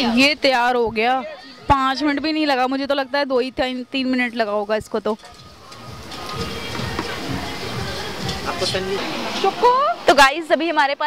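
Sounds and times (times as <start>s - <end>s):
music playing: 0.0s - 10.1s
food sizzling on a griddle: 3.6s - 10.9s.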